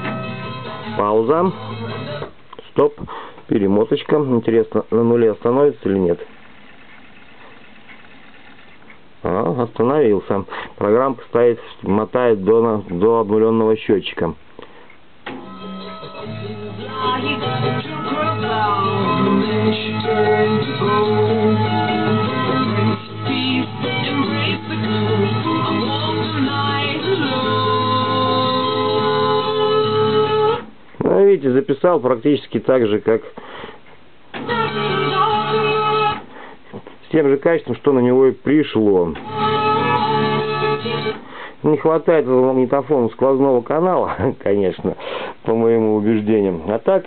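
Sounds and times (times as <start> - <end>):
music with held notes and melody: 0.0 - 2.4, 15.3 - 30.7, 34.4 - 36.2, 39.2 - 41.2
cassette deck rewinding whir: 4.8 - 9.3, 15.2 - 30.8, 34.3 - 36.3, 39.0 - 41.3.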